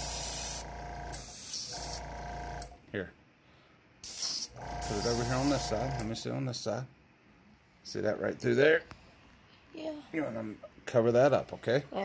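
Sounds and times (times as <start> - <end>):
airbrush spraying hiss: 0.0 - 0.6, 1.2 - 2.0, 4.0 - 5.8
compressor hum: 0.0 - 3.0, 4.1 - 6.5.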